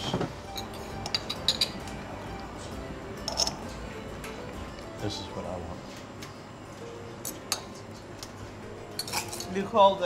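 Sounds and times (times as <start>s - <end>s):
quiet background music: 0.0s - 10.0s
cutlery clinking on ceramic: 0.6s - 1.8s, 8.9s - 9.6s.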